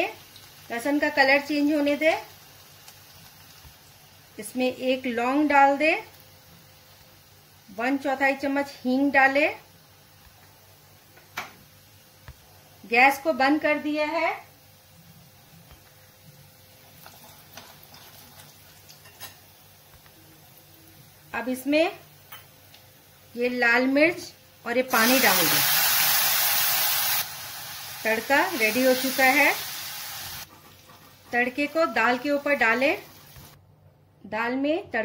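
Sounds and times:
water sizzling in hot oil: 0:00.0 - 0:23.4, 0:24.6 - 0:33.6.

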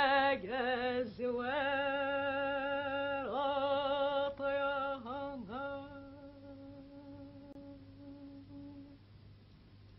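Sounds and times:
woman singing a soft note: 0:03.2 - 0:09.0.

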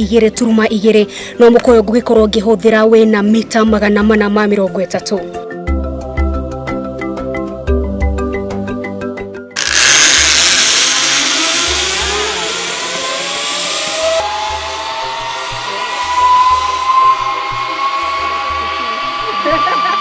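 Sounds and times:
zipline pulley whizzing on cable: 0:09.6 - 0:20.0.

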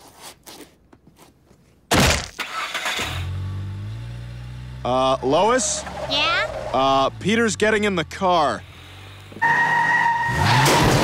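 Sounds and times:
car engine droning: 0:02.7 - 0:11.0.

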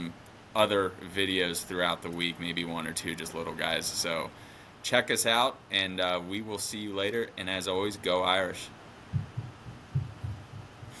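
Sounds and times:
faint hum: 0:00.0 - 0:11.0
soft low thumps in pairs: 0:09.1 - 0:11.0.

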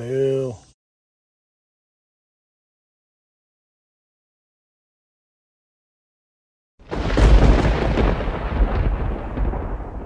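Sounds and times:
deep thunder-like rumble: 0:06.9 - 0:10.0.

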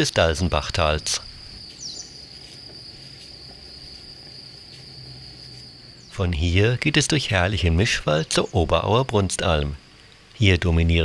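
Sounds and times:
cricket trilling: 0:00.0 - 0:11.0.

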